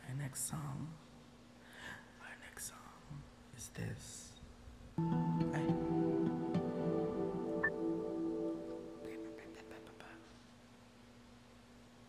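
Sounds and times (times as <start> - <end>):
person whispering: 2.2 - 4.1, 9.0 - 10.4
low steady hum: 5.0 - 11.3.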